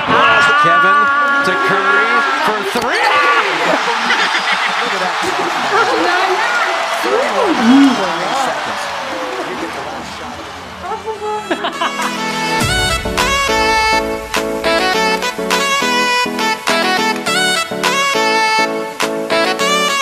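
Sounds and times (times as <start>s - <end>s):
excited exclamations: 0.0s - 8.5s
people laughing: 0.0s - 10.0s, 11.1s - 12.6s
group of people talking: 0.0s - 11.8s.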